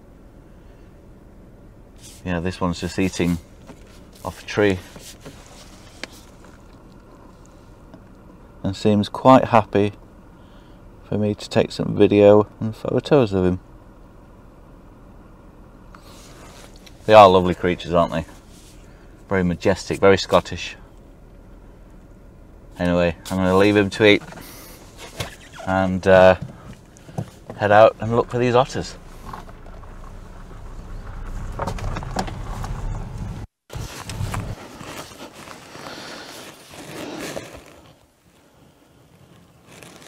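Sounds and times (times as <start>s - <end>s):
faint low rumble: 0.0s - 35.8s
light crackles: 26.6s - 40.0s.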